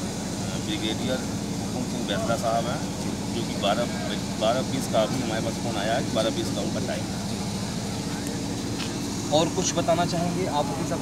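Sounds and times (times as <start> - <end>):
low outdoor hum and rumble: 0.0 - 11.0.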